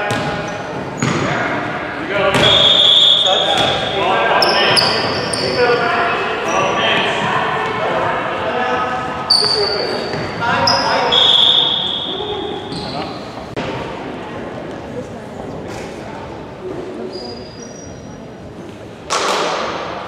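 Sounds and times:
indistinct voices echoing: 0.0 - 15.3
basketball bouncing: 0.1 - 0.4, 2.3 - 2.6
shoes squeaking on gym floor: 2.4 - 7.1, 9.3 - 13.4.

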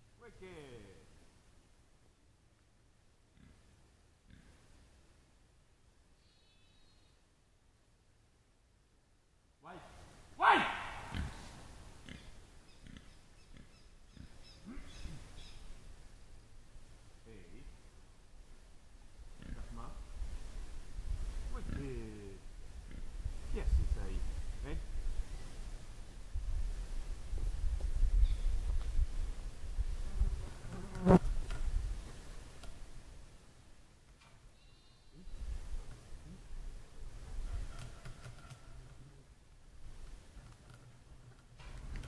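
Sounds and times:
short animal calls: 6.2 - 7.2, 10.4 - 15.6.

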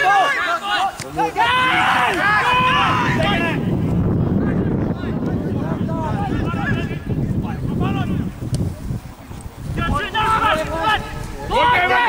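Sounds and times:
voices shouting: 0.0 - 8.5, 9.6 - 12.0
wind rumble on microphone: 1.4 - 12.0.

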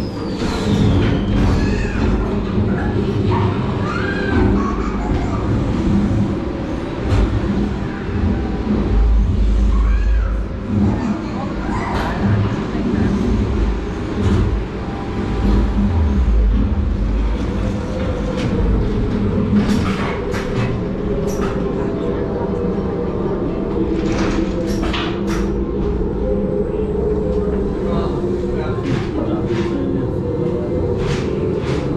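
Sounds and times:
deep rumbling effects: 0.0 - 31.9.

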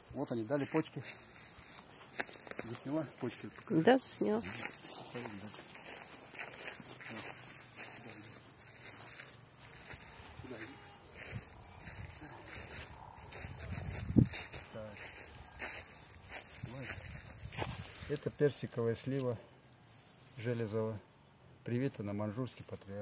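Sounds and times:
footsteps through grass: 0.0 - 18.8
faint voices: 2.6 - 16.0.

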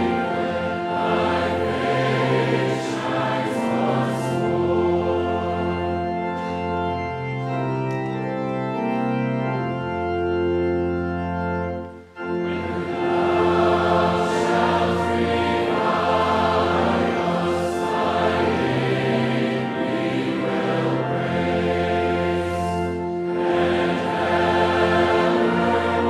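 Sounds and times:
congregation singing a hymn: 0.0 - 26.0
organ accompaniment: 0.0 - 26.0.

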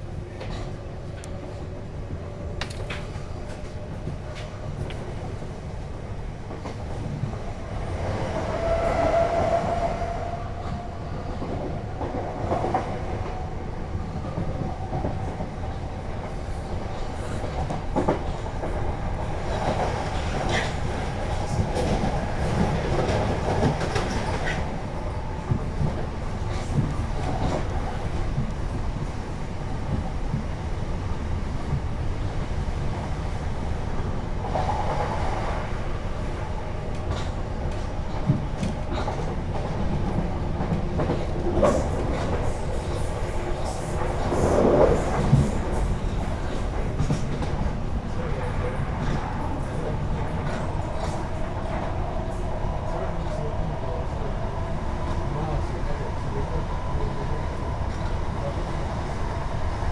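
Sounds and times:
train cabin rumble: 0.0 - 59.9.

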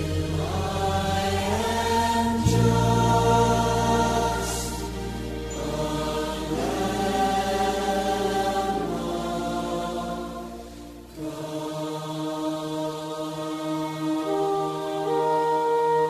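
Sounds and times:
choral worship music: 0.0 - 16.0.

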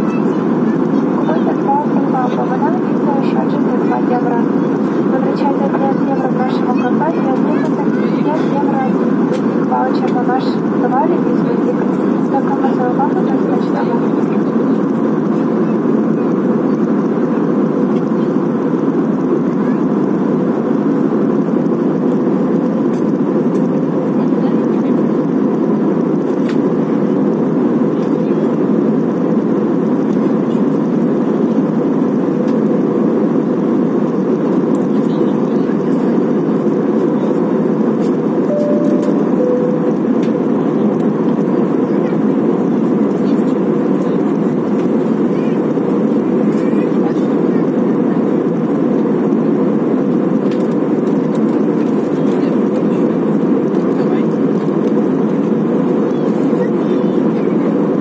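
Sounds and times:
airliner cabin jet engine rush: 0.0 - 58.0.

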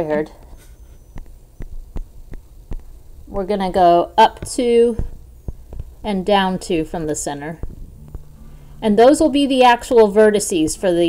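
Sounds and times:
low steady hum: 0.0 - 11.0
stylus tapping on touchscreen: 1.1 - 3.0, 4.4 - 6.0.

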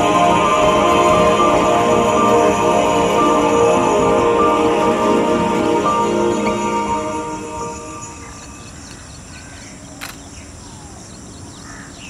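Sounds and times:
birds calling faintly: 8.0 - 12.0.

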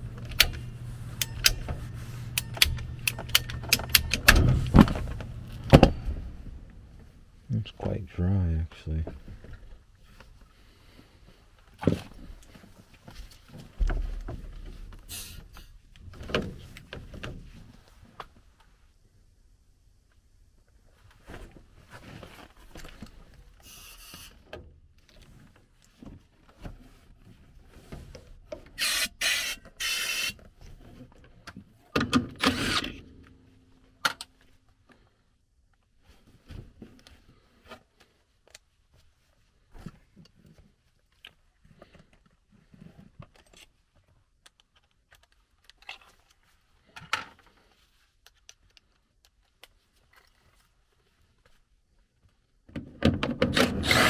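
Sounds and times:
handling clicks and knocks: 0.1 - 6.1
short sharp noisy bursts: 28.8 - 30.4.

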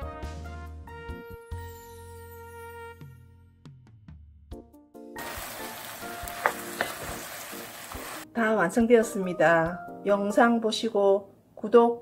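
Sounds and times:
wooden spatula stirring: 5.2 - 8.2
glaze sizzling in a wok: 5.2 - 8.3.

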